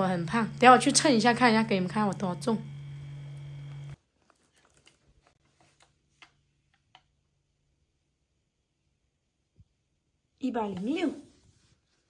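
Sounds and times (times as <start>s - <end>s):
steady low hum: 0.0s - 4.0s.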